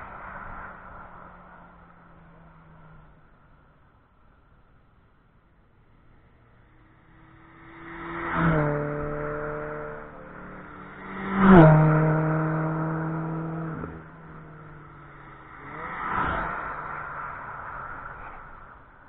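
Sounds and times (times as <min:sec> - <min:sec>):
race cars passing at speed: 0:00.0 - 0:19.0.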